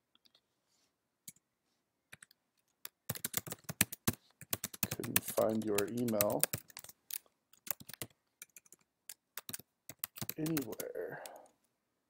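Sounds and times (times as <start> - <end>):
typing on computer keyboard: 2.1 - 11.5.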